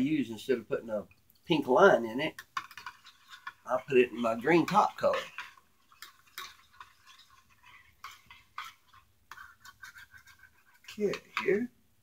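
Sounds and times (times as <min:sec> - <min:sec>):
utensil scraping metal pot: 0:00.0 - 0:11.8
utensil stirring liquid in metal pot: 0:01.0 - 0:11.8.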